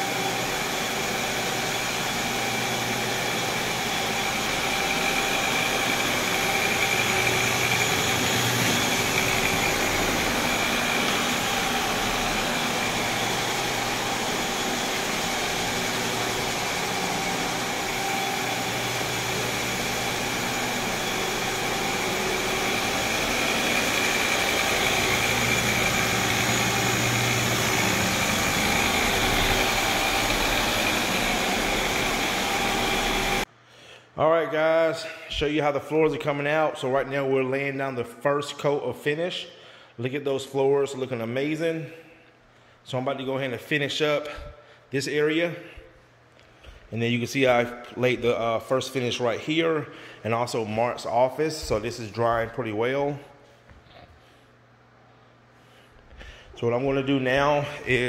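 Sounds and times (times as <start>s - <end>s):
floor scrubber running: 0.0s - 33.5s, 46.4s - 54.5s, 55.8s - 58.0s.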